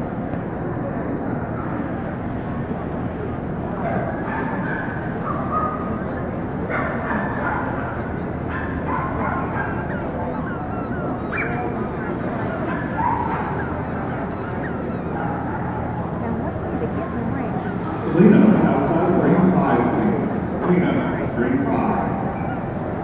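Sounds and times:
crowd hubbub: 0.0s - 23.0s
dogs barking and yipping: 3.8s - 5.9s, 6.7s - 16.3s, 17.3s - 19.0s, 22.2s - 22.8s.

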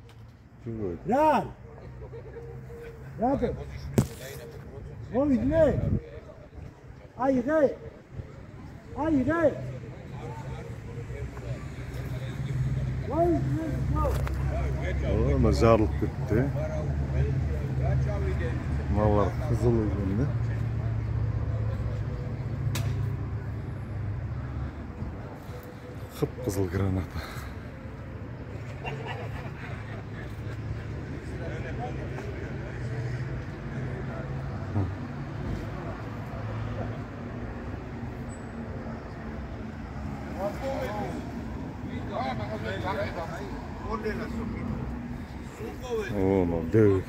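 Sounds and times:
vehicle engine rumbling: 0.0s - 47.0s
voices: 0.0s - 47.0s.

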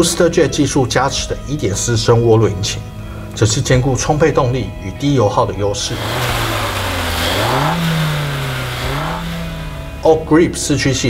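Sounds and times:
car engine revving: 5.8s - 10.6s.

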